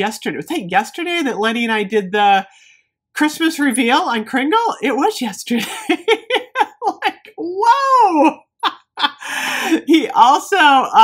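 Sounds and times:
woman laughing vocal sound: 0:05.6 - 0:07.4, 0:08.0 - 0:09.9.

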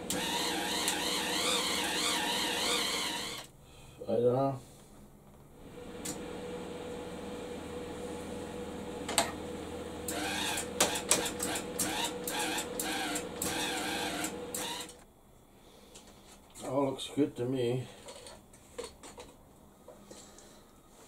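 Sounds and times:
wire-feed motor hum: 0:00.0 - 0:03.6, 0:05.5 - 0:15.1.

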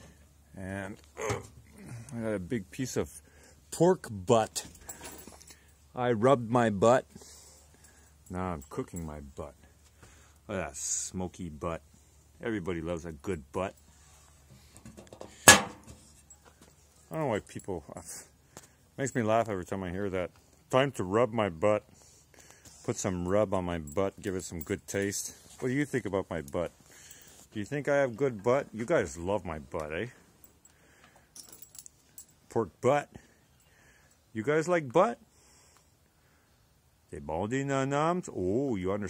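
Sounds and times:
faint scuffs and rattles: 0:03.8 - 0:06.4, 0:13.7 - 0:19.6, 0:22.0 - 0:32.5
metal lid clanking shut: 0:15.4 - 0:15.9
dog collar and tag jingling: 0:30.4 - 0:32.5.

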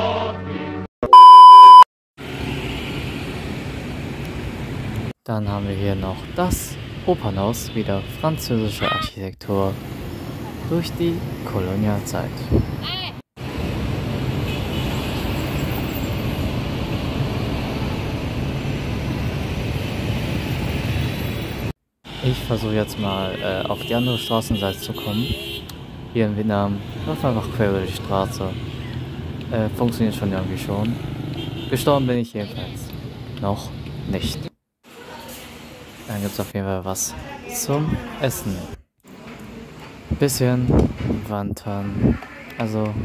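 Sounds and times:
test tone beep: 0:01.0 - 0:01.9
street traffic noise: 0:01.2 - 0:43.0
car engines: 0:13.4 - 0:23.8, 0:25.4 - 0:31.8.

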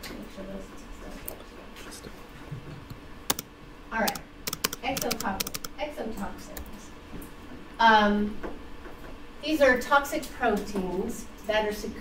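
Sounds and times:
laptop keyboard keys clicking: 0:03.3 - 0:05.8.

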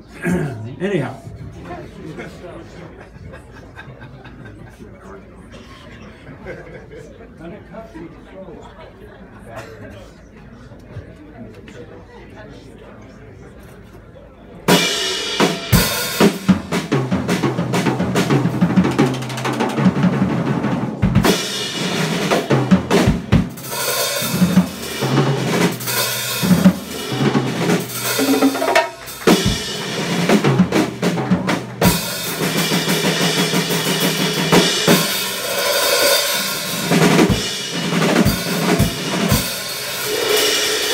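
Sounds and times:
crowd murmur: 0:00.0 - 0:40.9
busy drum kit: 0:14.6 - 0:40.9
live band playing: 0:14.7 - 0:40.9.

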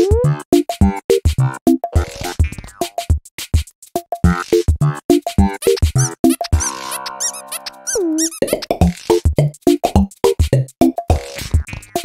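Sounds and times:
cartoon music with electronic beat: 0:00.0 - 0:12.0
high squeaky chirps: 0:05.6 - 0:08.7.

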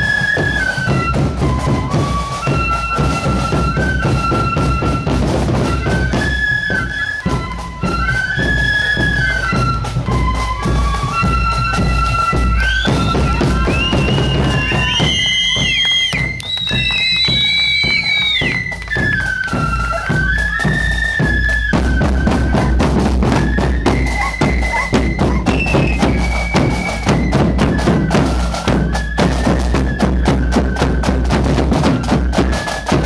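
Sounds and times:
flutes playing a tune: 0:00.0 - 0:33.0
bass drums beating: 0:12.3 - 0:18.4, 0:21.7 - 0:33.0.

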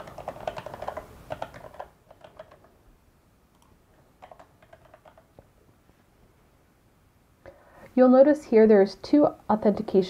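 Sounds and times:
faint computer keyboard typing: 0:00.0 - 0:02.8, 0:03.5 - 0:05.5.

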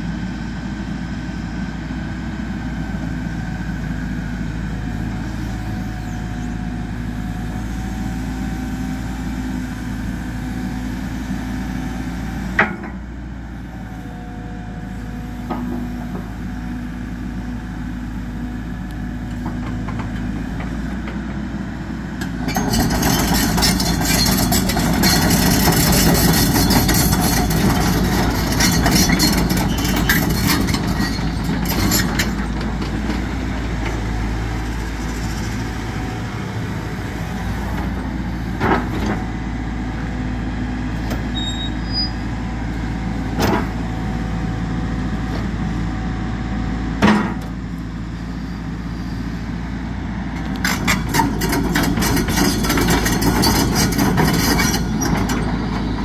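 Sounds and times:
excavator diesel engine running: 0:00.0 - 0:56.0.

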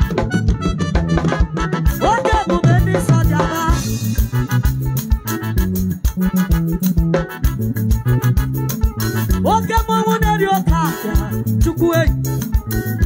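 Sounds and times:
bass guitar: 0:00.0 - 0:13.0
drum kit beat: 0:00.0 - 0:13.0
electronic keyboards: 0:00.0 - 0:13.0.

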